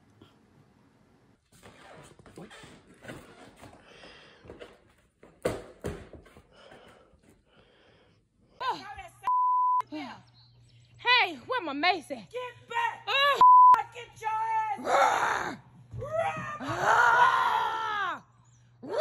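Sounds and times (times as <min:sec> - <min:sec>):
censor bleep tone: 0:09.3 - 0:09.9, 0:13.4 - 0:13.8.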